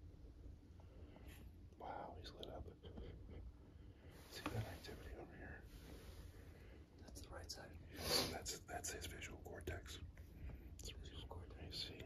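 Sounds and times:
low steady hum: 0.0 - 12.0
person whispering: 1.8 - 3.0, 4.3 - 5.7, 7.0 - 10.1, 10.8 - 12.0.

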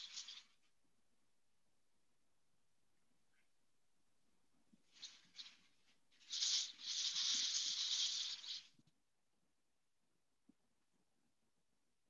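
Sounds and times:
rustling hiss: 0.0 - 0.7, 4.8 - 8.8.

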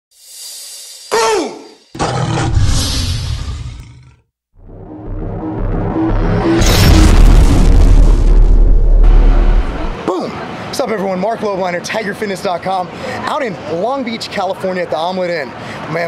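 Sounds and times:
falling pitch sound effect: 4.6 - 10.0
music with heavy bass: 4.6 - 10.0.

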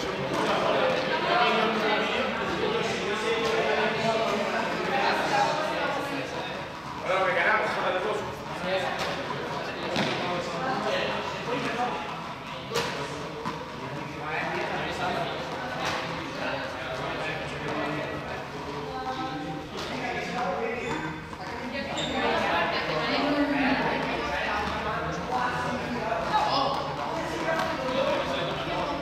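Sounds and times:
indistinct chatter echoing: 0.0 - 29.0.

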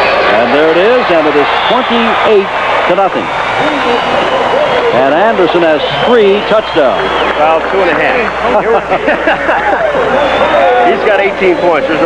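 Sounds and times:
men commentating: 0.0 - 12.0.

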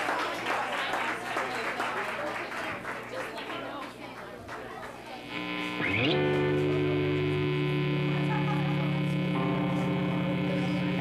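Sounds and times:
distorted electric guitar chord: 5.1 - 11.0
guitar rising slide: 5.2 - 11.0.

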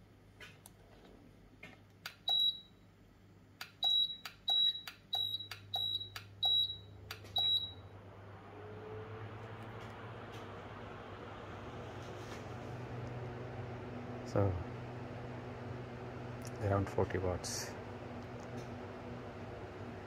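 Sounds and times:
electric fan whirring: 3.4 - 20.0.

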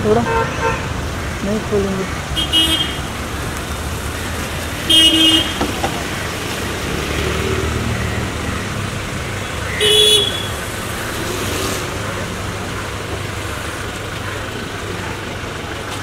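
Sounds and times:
traffic engine rumble: 0.0 - 16.0
car horn toots: 2.4 - 3.1, 4.9 - 5.8, 9.7 - 10.6.

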